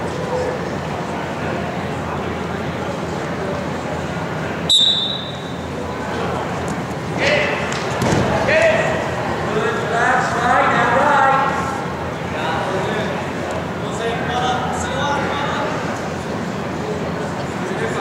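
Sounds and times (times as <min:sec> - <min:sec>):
voices shouting in echoing gym: 0:00.0 - 0:18.0
referee's whistle blast: 0:04.7 - 0:05.6.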